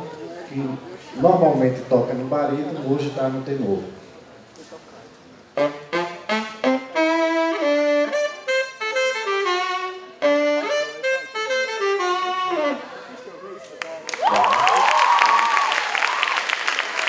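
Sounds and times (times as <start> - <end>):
tenor saxophone: 5.5 - 13.3.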